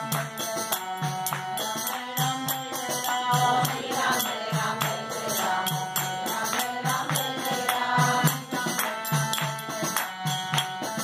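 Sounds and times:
hand claps: 0.0s - 2.7s, 4.8s - 11.0s
light percussion: 0.0s - 11.0s
group chanting in unison: 3.0s - 9.0s.

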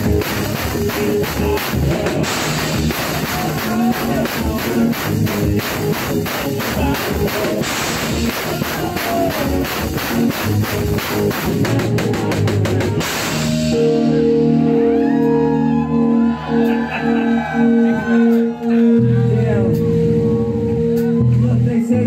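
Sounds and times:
fast drum beat: 0.0s - 13.7s
live rock-rap music: 0.0s - 22.0s
droning chord: 13.3s - 21.3s
voices shouting: 14.9s - 19.3s.

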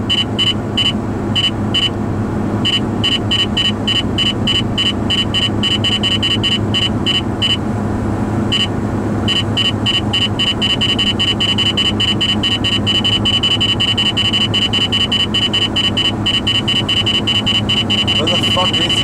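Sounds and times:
radar detector beeping: 0.0s - 2.0s, 2.6s - 7.6s, 8.5s - 8.7s, 9.3s - 19.0s
road and engine noise in car: 0.0s - 19.0s.

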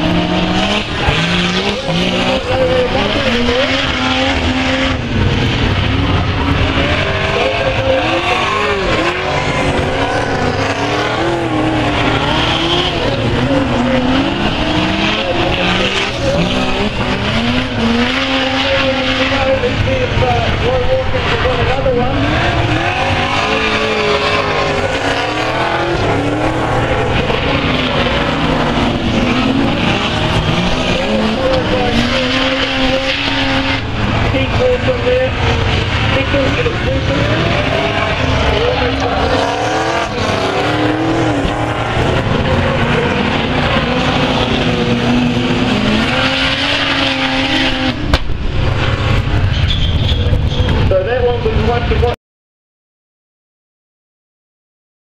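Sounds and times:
race car engines roaring: 0.0s - 52.2s.

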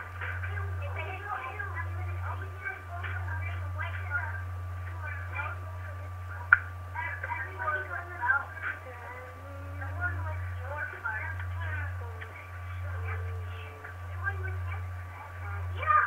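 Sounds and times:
indistinct talking: 0.0s - 16.0s
steady low hum: 0.0s - 16.0s
thin high whine: 0.0s - 16.0s.

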